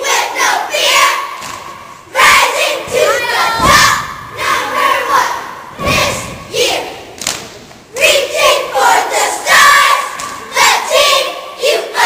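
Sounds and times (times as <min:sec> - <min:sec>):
girls shouting a cheer: 0:00.0 - 0:07.2, 0:07.9 - 0:12.0
thumps: 0:02.9 - 0:04.3.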